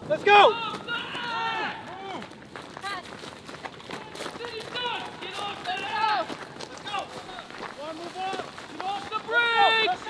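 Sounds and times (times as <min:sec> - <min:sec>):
men shouting commands: 0:00.0 - 0:02.2, 0:04.4 - 0:10.0.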